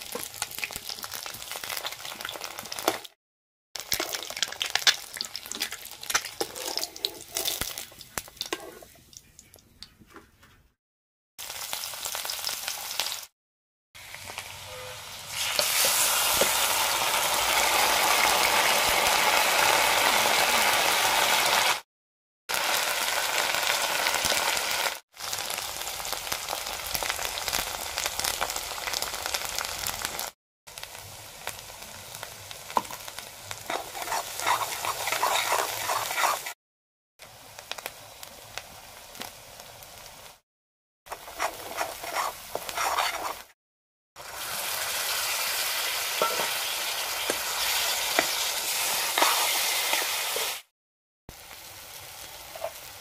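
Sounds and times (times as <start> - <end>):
onions sizzling in oil: 0.0 - 3.2, 11.4 - 13.3, 14.0 - 21.8, 22.5 - 36.6, 37.2 - 40.4, 41.1 - 43.6, 44.2 - 50.7, 51.3 - 53.0
oil crackling: 3.8 - 9.8, 32.7 - 36.6, 41.1 - 43.6.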